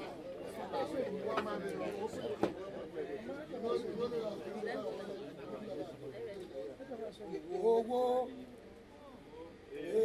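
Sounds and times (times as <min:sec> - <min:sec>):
overlapping crowd chatter: 0:00.0 - 0:10.0.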